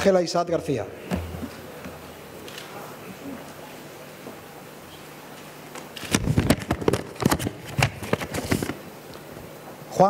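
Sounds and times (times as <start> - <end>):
paper crackling: 6.0 - 8.8.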